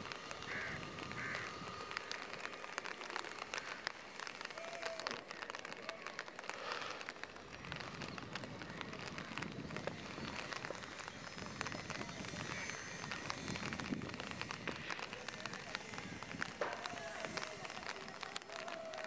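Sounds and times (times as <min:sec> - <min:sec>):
rain pattering: 0:00.0 - 0:19.0.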